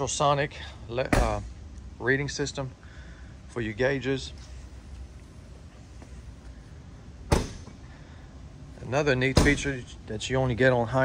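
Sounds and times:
low steady background rumble: 0:00.0 - 0:11.0.

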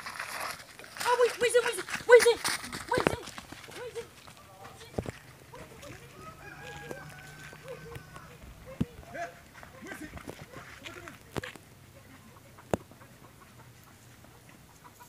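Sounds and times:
distant voices calling: 0:01.0 - 0:15.0.

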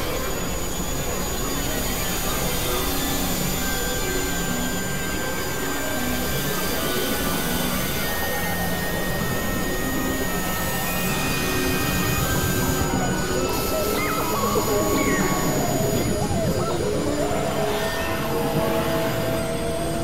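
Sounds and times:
noisy drone: 0:00.0 - 0:20.0.

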